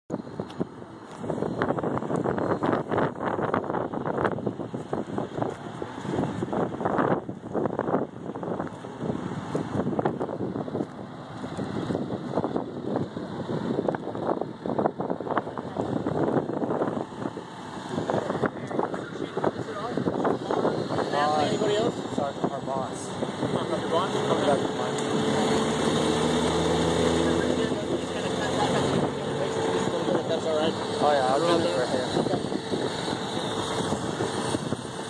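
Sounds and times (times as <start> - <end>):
wind buffeting microphone: 0.1 - 35.0.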